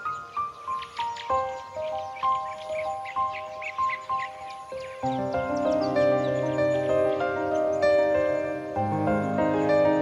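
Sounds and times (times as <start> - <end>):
piano melody: 0.0 - 10.0
deep piano chord: 5.0 - 10.0.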